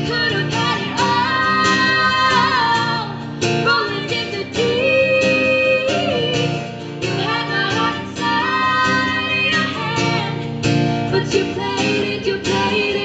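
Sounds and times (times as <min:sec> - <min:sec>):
strummed acoustic guitar: 0:00.0 - 0:13.0
women singing together: 0:00.0 - 0:13.0.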